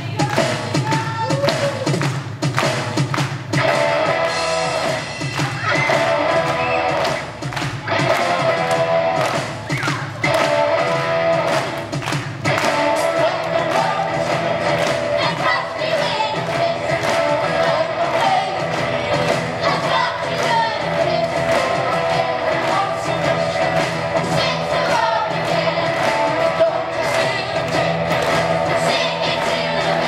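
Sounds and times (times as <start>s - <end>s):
live rock band playing: 0.4s - 30.0s
group of voices singing: 12.6s - 30.0s.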